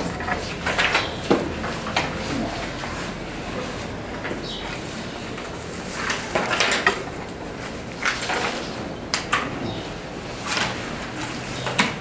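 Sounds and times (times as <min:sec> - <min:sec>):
papers rustling: 0:00.0 - 0:08.9.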